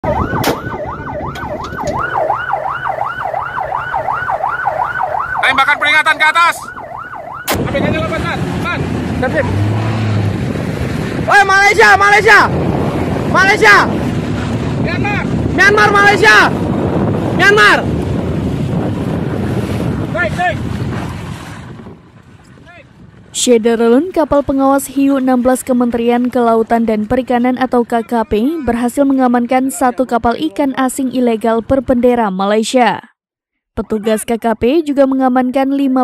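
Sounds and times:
electronic siren yelping: 0:00.0 - 0:07.6
wind buffeting microphone: 0:00.0 - 0:29.6
sharp crack: 0:00.4 - 0:02.0, 0:07.4 - 0:08.2
sea water rushing around boat: 0:00.9 - 0:28.0.

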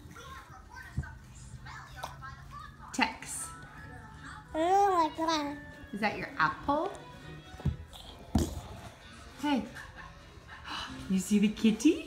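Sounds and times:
baby babbling: 0:04.5 - 0:05.6.

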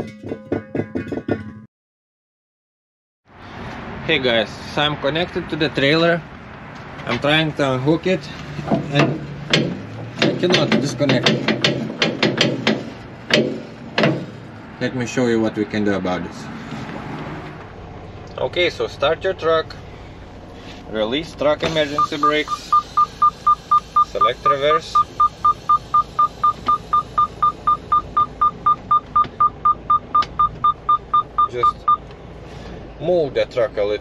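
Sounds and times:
faint low engine hum: 0:03.3 - 0:34.0
truck reverse warning beeps: 0:21.6 - 0:32.0.

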